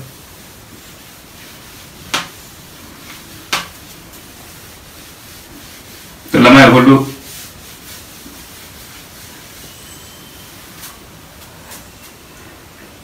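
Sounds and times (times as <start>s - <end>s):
cloth wiping a whiteboard: 0.0s - 12.6s
background hiss: 0.0s - 13.0s.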